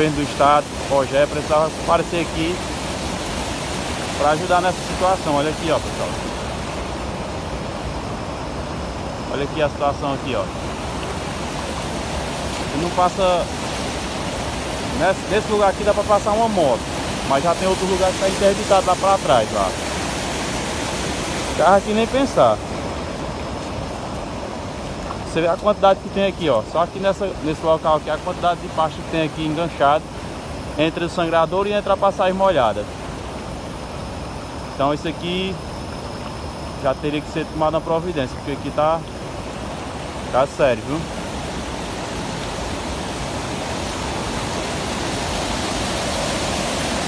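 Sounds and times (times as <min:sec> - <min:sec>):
water rushing over spillway: 0:00.0 - 0:47.0.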